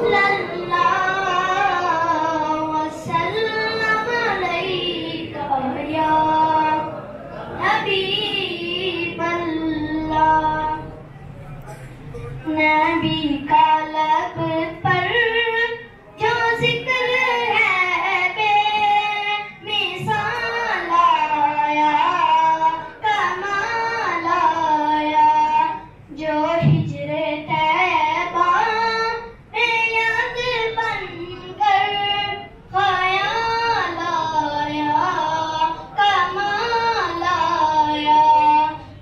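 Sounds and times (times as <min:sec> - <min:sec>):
boy singing into a microphone: 0:00.0 - 0:11.0, 0:12.2 - 0:39.0.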